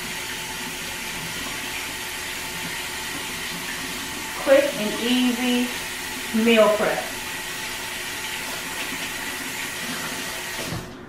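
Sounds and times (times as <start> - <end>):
water running from a tap: 0.0 - 11.0.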